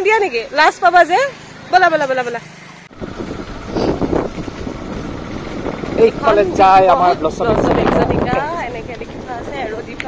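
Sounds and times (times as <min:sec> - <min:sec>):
motorcycle engine running: 0:00.0 - 0:10.0
wind buffeting microphone: 0:02.9 - 0:10.0.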